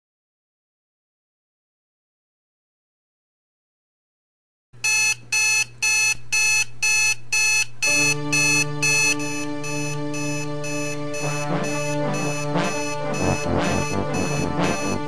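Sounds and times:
digital alarm clock beeping: 0:04.8 - 0:15.0
music with sustained tones: 0:07.9 - 0:15.0.

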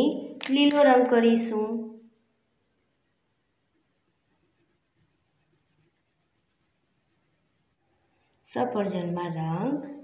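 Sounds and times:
colouring scratching on paper: 0:02.8 - 0:08.1.

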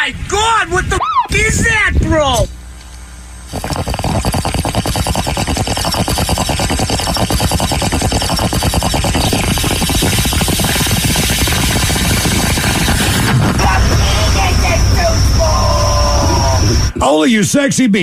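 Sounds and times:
water bubbling through bong: 0:03.6 - 0:13.4.

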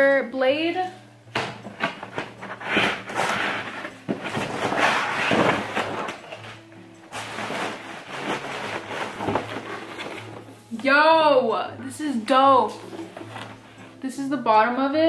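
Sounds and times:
background music: 0:00.0 - 0:15.0
cardboard box rustling and scraping: 0:02.0 - 0:10.6.

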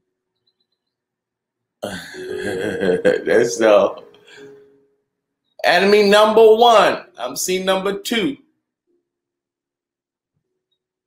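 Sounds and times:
man laughing: 0:01.8 - 0:03.8.

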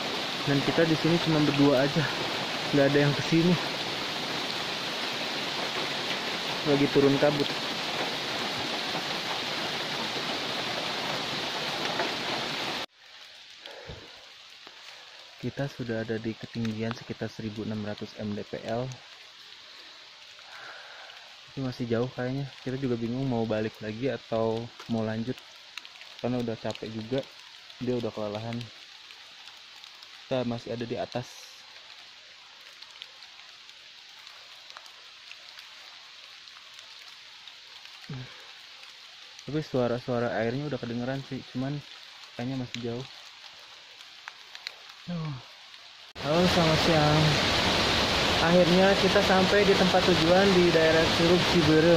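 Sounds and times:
steady rain falling: 0:00.0 - 0:51.9
faint ticks: 0:24.7 - 0:30.2, 0:31.1 - 0:39.4, 0:43.0 - 0:45.0.

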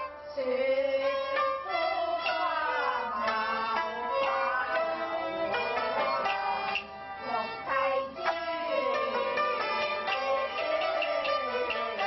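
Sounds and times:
opera singing: 0:00.0 - 0:12.0
string accompaniment: 0:00.0 - 0:12.0.

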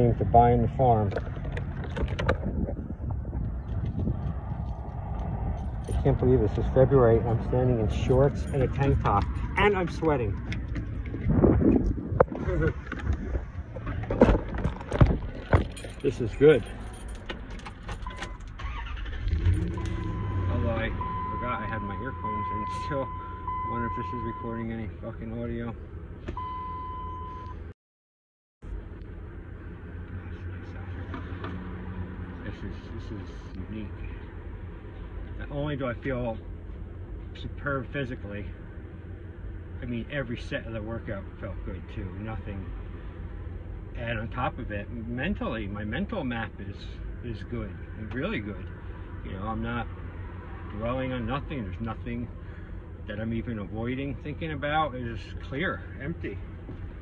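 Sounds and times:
low outdoor rumble: 0:00.0 - 0:27.7, 0:28.6 - 0:57.0
electronic beep tone: 0:19.7 - 0:24.6.

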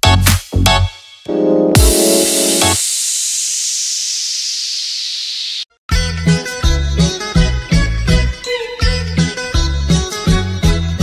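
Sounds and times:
white noise sweep: 0:01.8 - 0:05.7.

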